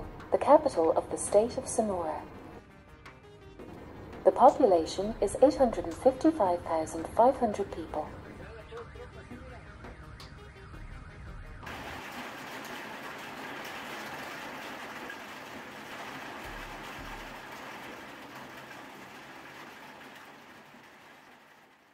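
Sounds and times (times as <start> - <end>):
heavy rain: 3.7 - 8.5, 11.7 - 21.9.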